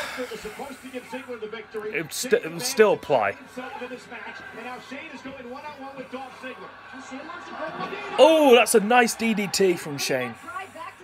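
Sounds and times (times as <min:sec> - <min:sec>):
commentators talking on broadcast: 0:00.0 - 0:11.0.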